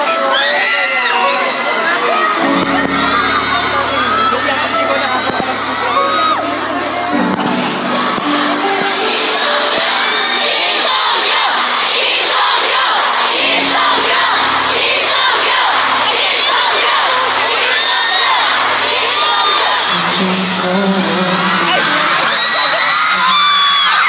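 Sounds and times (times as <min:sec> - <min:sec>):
crowd screaming and cheering: 0:00.0 - 0:24.0.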